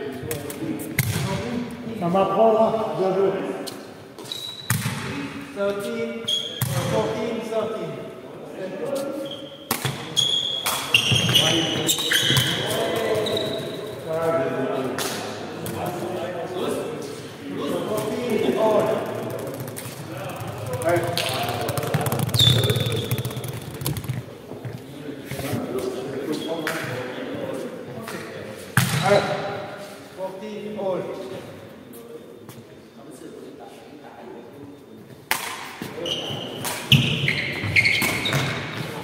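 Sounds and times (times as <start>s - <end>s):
players calling out: 17.6s - 24.4s
ball kicked and bouncing on floor: 19.2s - 24.8s.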